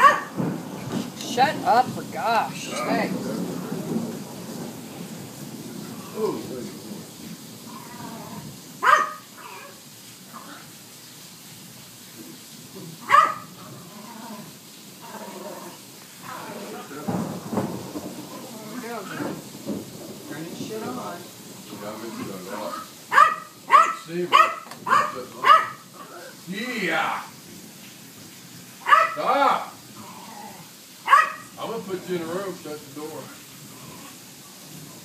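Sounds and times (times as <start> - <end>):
dog barking: 0.0 - 0.4, 8.8 - 9.8, 13.0 - 13.5, 22.7 - 25.8, 28.8 - 29.2, 31.0 - 31.6.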